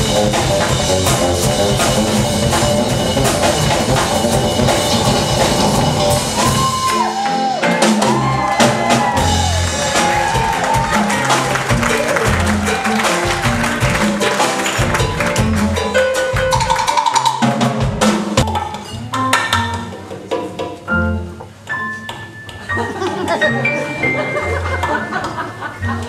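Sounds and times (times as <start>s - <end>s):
electric bass line: 0.0s - 6.9s
drums and cymbals: 0.0s - 21.3s
live jazz band: 0.0s - 26.0s.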